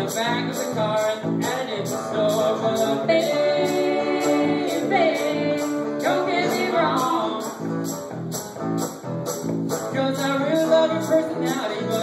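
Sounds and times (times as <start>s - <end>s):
acoustic guitar: 0.0s - 12.0s
jingling percussion beat: 0.0s - 12.0s.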